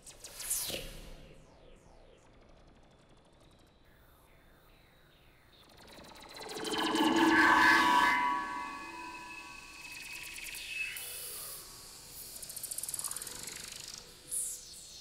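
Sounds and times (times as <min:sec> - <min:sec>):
sustained electronic tones: 0:05.9 - 0:10.4.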